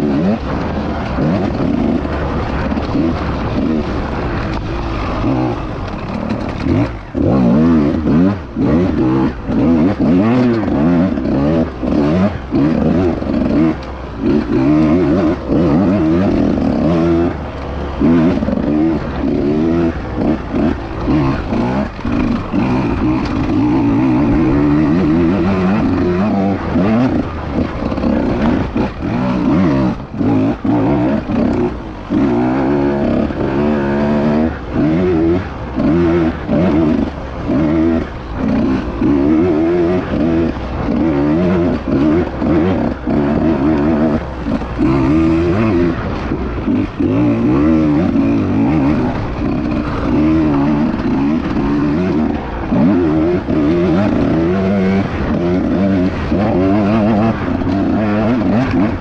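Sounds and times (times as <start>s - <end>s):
motorbike engine revving: 0.0s - 59.0s.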